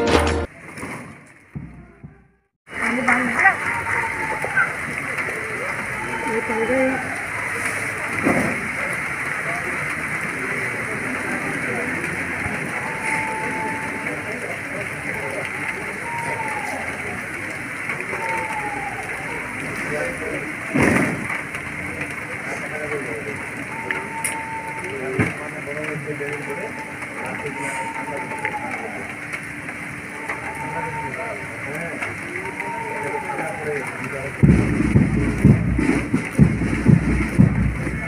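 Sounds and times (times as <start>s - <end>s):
distant indistinct voices: 1.3s - 38.0s
steady rain hiss: 2.7s - 38.0s.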